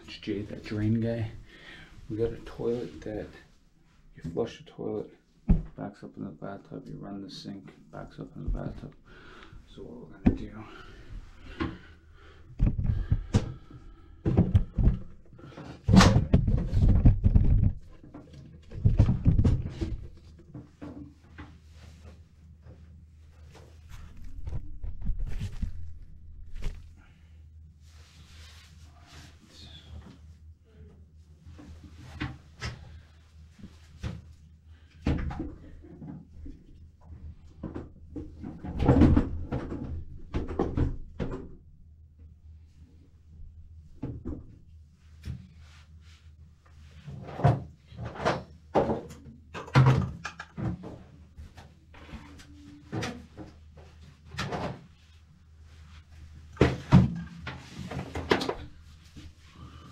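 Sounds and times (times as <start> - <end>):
knocks and clunks: 5.5 - 5.8, 12.6 - 21.4.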